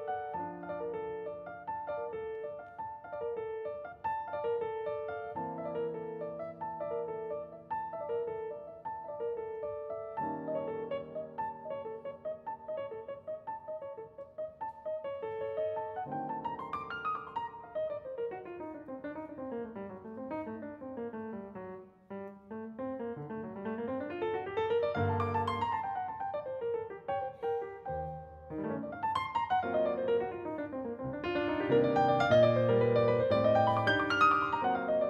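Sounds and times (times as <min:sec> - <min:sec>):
grand piano playing solo: 0:00.0 - 0:35.0.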